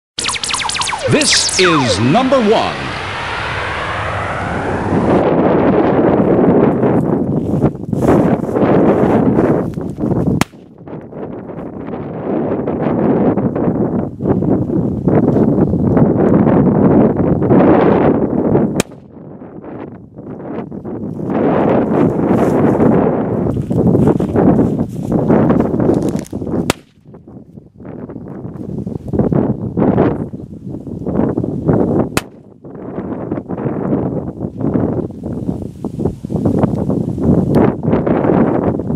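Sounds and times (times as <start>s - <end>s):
wind on microphone: 0.2s - 38.9s.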